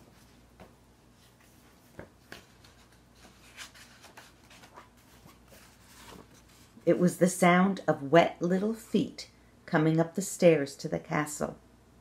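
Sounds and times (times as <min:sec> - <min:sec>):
paper pages rustling: 0:00.1 - 0:06.8.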